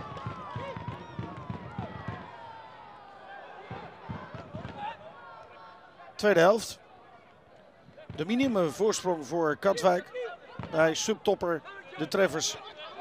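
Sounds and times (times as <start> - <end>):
players shouting and calling: 0.0 - 13.0.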